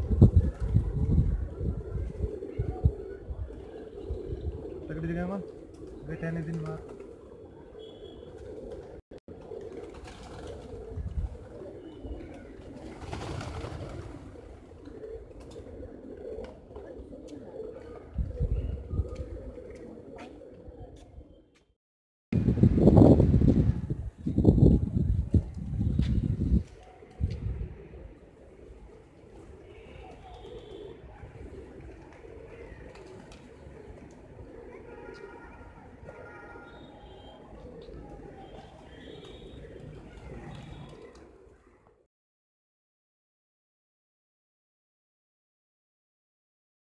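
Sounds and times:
pigeons cooing: 0.0s - 21.5s, 26.0s - 41.9s
wings flapping: 8.3s - 18.1s, 29.4s - 35.4s.

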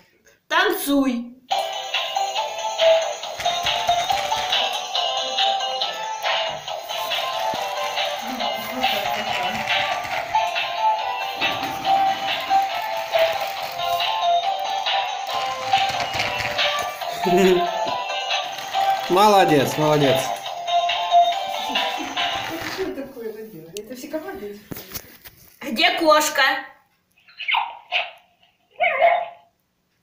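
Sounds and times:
tinny electronic dance tune: 6.2s - 20.3s.

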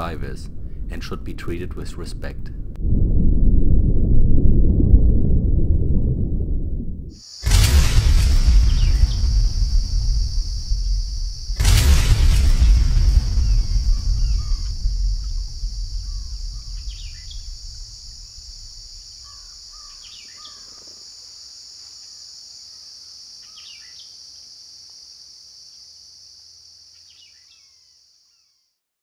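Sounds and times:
deep low rumble: 2.5s - 19.9s
high-pitched insect drone: 7.2s - 28.4s
short bird-like chirps: 13.4s - 17.7s.

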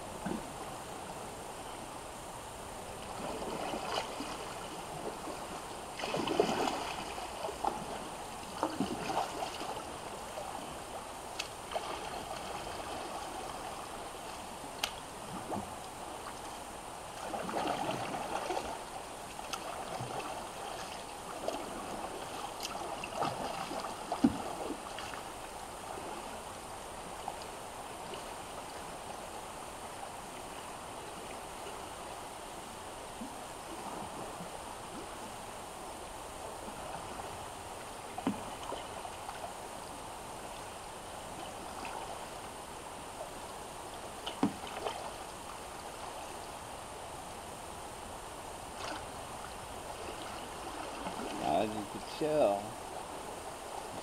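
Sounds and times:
river water over rocks: 0.0s - 54.0s
kayak paddle splashing: 2.9s - 26.3s, 36.6s - 47.2s, 47.8s - 54.0s.

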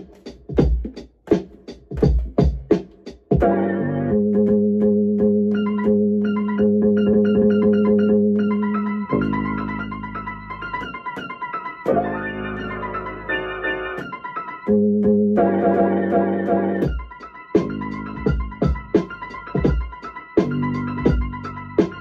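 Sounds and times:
sustained keyboard chord: 3.4s - 22.0s.

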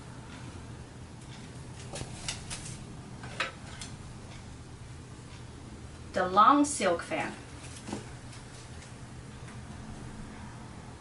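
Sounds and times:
fan clicks and rustles: 0.2s - 10.2s.

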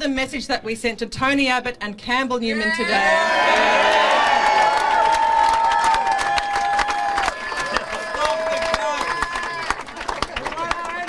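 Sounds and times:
crowd shouting and whooping: 2.5s - 11.0s
crowd clapping: 3.2s - 11.0s.

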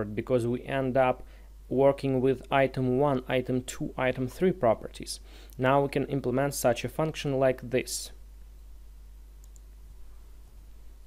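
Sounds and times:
steady low hum: 0.0s - 11.0s
faint clicks: 9.4s - 9.8s.

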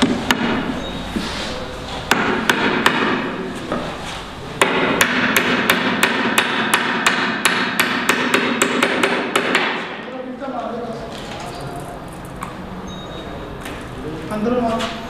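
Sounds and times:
hammer striking timber: 0.0s - 0.6s, 2.1s - 3.5s, 4.6s - 10.0s.

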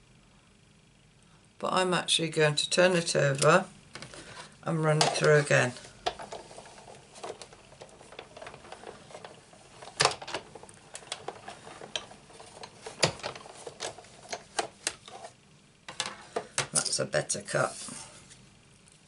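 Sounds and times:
hand-cranked die-cutting machine: 5.1s - 15.3s.

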